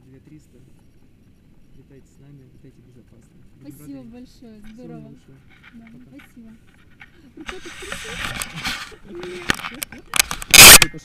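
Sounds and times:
faint low voices: 1.7s - 11.0s
rustling and clicking on microphone: 5.4s - 11.0s.

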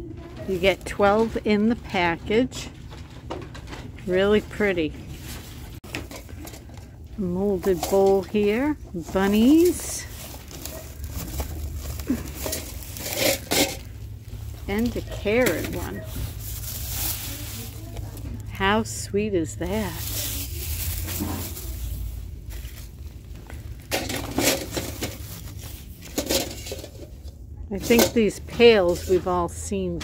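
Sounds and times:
store interior hum: 0.0s - 30.0s
plastic rustling: 0.2s - 29.4s
plastic wrapping crinkling: 2.7s - 27.2s.

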